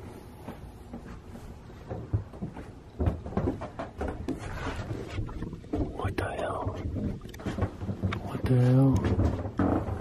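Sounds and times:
dull knocks and thumps: 0:01.8 - 0:10.0.

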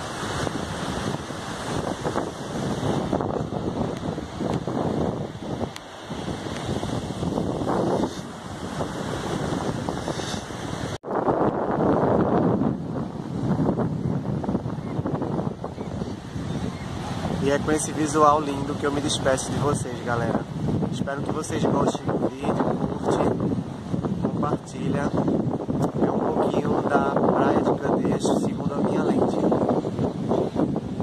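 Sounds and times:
surf breaking on beach: 0:00.0 - 0:31.0
wind buffeting microphone: 0:00.0 - 0:31.0.

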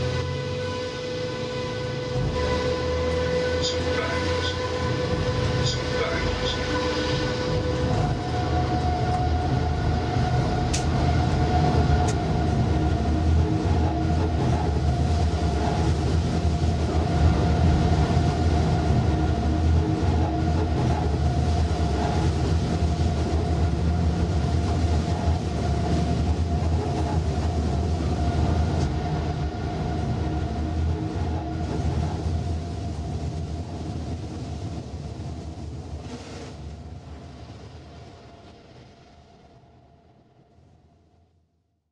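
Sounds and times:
electric train rumbling: 0:00.0 - 0:41.4.

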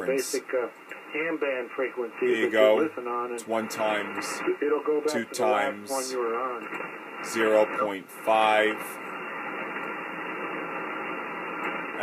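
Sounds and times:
radio receiver static hiss: 0:00.0 - 0:12.0.

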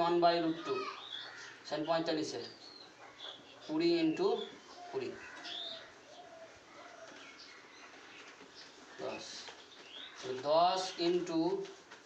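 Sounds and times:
faint bird chirps: 0:00.5 - 0:11.2.

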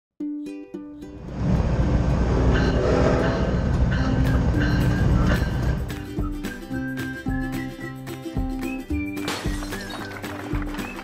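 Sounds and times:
music: 0:00.2 - 0:11.0
passing train rumble: 0:01.1 - 0:06.3.

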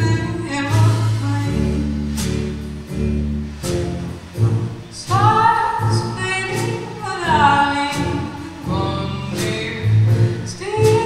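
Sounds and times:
acoustic guitar: 0:00.0 - 0:11.0
drums: 0:00.0 - 0:11.0
upright bass: 0:00.0 - 0:11.0
person singing: 0:05.0 - 0:11.0.

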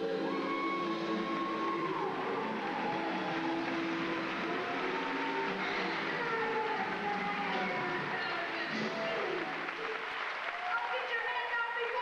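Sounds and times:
audience applauding: 0:00.0 - 0:12.0
voices: 0:01.7 - 0:10.0.

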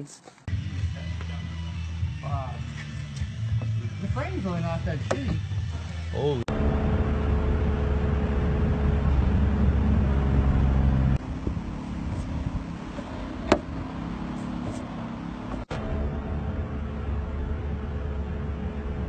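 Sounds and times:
quiet vehicle sound: 0:00.5 - 0:19.0
car engine rumbling: 0:03.3 - 0:19.0.

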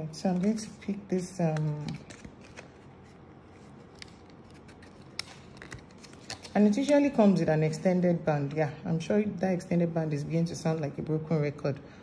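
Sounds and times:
small clicks and handling noise: 0:03.6 - 0:07.0.

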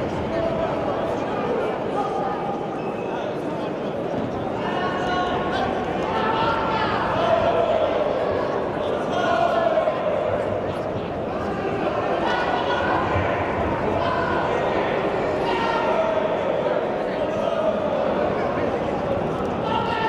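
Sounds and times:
crowd shouting: 0:04.7 - 0:10.6, 0:11.4 - 0:18.4, 0:19.4 - 0:20.0.

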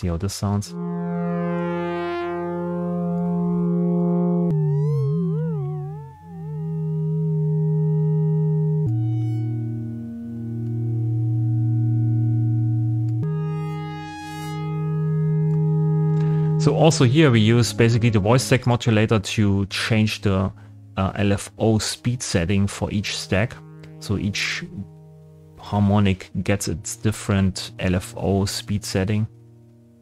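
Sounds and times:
synthesizer chord drone: 0:00.0 - 0:30.0.

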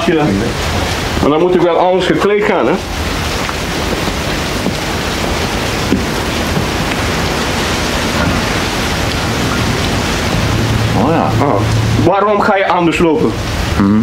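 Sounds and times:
sea wind: 0:00.0 - 0:13.9
surf: 0:00.0 - 0:14.0.

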